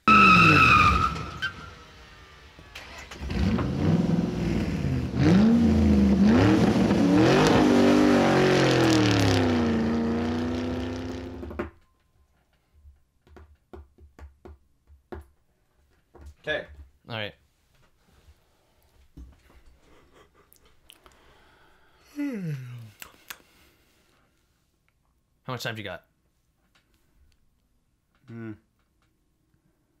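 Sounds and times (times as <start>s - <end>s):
high squeal: 0.0s - 2.0s
car engine revving: 0.0s - 11.6s.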